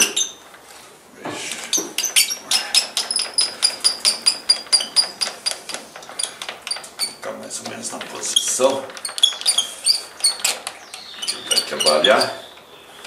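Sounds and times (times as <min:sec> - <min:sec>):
lathe carriage handwheel clicking: 0:02.0 - 0:12.7.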